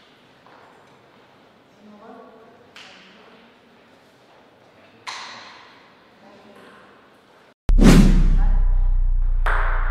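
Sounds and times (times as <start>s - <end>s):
faint hall ambience: 0.0s - 7.5s
loud whoosh: 7.7s - 9.9s
steady low drone: 7.7s - 9.9s.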